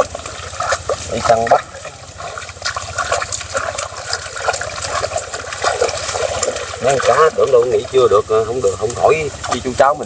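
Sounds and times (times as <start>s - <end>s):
hands splashing in water: 0.0s - 7.6s
low steady rumble: 0.0s - 10.0s.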